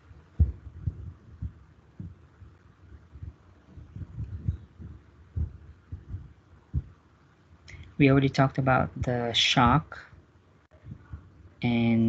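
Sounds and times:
muffled low thumps: 0.2s - 7.2s, 10.8s - 11.4s.

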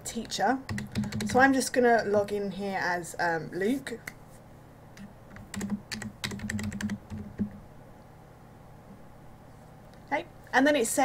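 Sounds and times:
keyboard typing: 0.7s - 1.5s, 5.3s - 7.6s.

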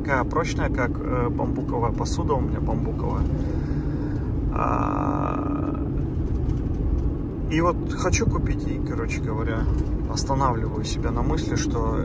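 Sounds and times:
car tyres and engine rumble: 0.0s - 12.0s.

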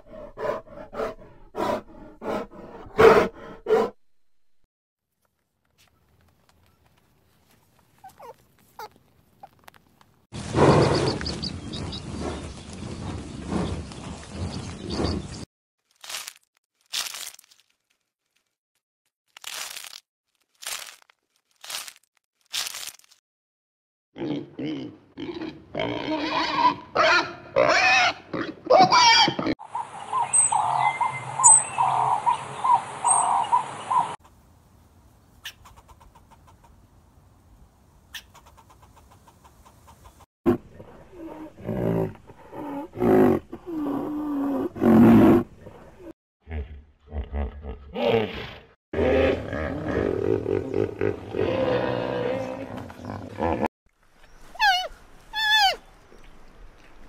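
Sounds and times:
pigs grunting and squealing: 24.2s - 29.6s, 46.5s - 53.7s
animal calls: 54.4s - 55.9s.

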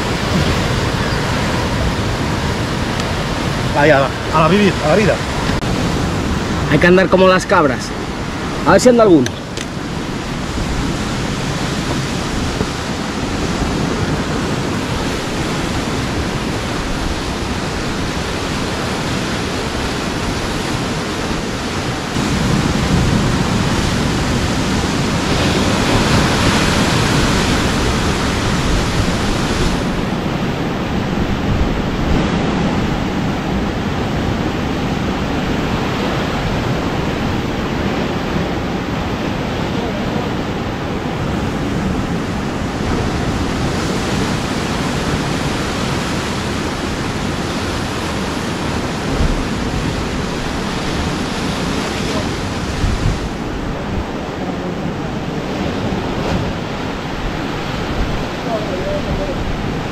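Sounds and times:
surf breaking on rocks: 0.0s - 59.9s
wind on microphone: 0.0s - 59.9s.

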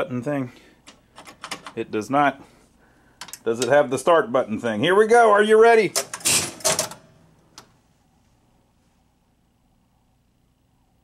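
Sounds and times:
pinball relay and coil clatter: 5.9s - 7.2s
pinball machine sharp click: 6.0s - 7.1s.

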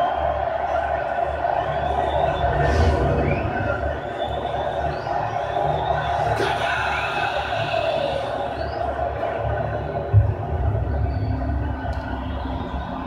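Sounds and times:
rumbling film music from tv: 0.0s - 13.0s.

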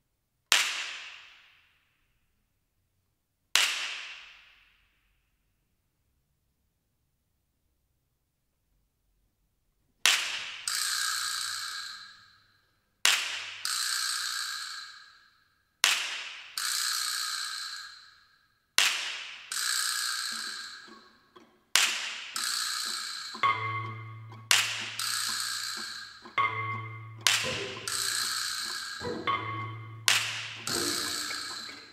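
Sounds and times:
orchestral percussion strikes: 20.3s - 31.9s
orchestra holding low notes: 23.3s - 31.9s.

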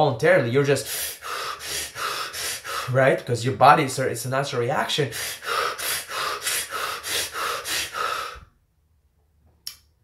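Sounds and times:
man breathing in quick gasps: 0.8s - 3.0s, 5.1s - 8.5s.

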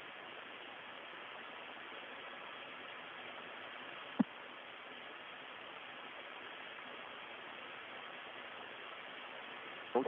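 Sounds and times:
radio static hiss: 0.0s - 10.0s.

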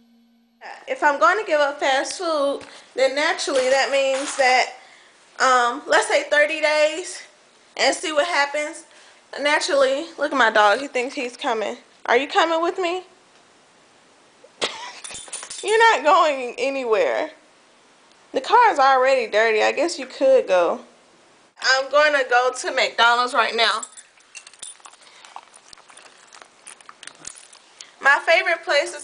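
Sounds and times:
short cough: 14.6s - 15.1s.

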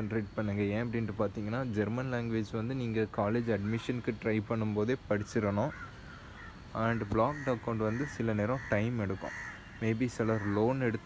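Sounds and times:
man speaking: 0.0s - 5.8s, 6.7s - 11.0s.

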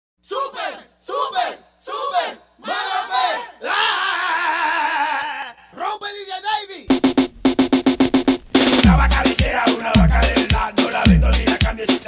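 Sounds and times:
voices shouting together: 0.2s - 5.6s.

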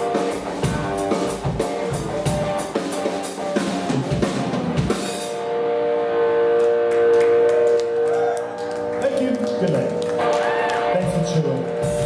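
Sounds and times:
loud rock band playing: 0.0s - 12.0s
electric guitar chord ringing: 5.2s - 12.0s.

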